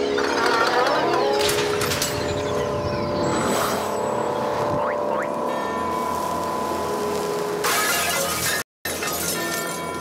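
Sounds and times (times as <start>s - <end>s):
held synthesizer tones: 4.6s - 6.2s.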